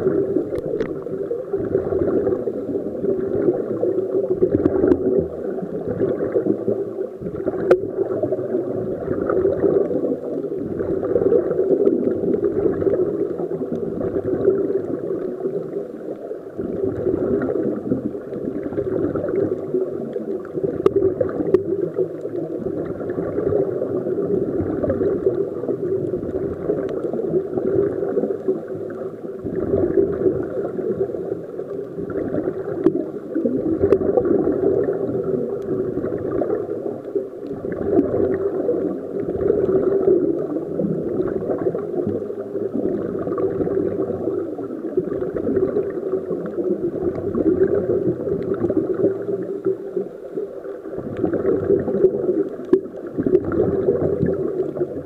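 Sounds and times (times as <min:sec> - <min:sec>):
underwater bubbles gurgling: 0:00.0 - 0:55.0.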